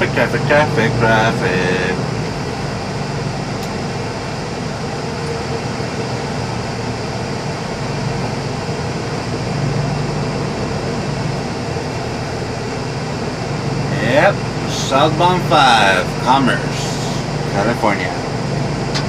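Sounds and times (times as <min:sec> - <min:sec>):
road noise: 0:00.0 - 0:19.0
truck engine hum: 0:00.0 - 0:19.0.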